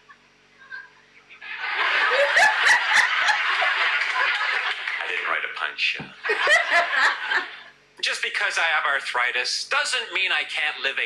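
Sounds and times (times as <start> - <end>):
woman laughing: 1.4 - 4.8, 6.3 - 7.6
audience laughing and applauding: 1.4 - 5.5, 6.2 - 7.7.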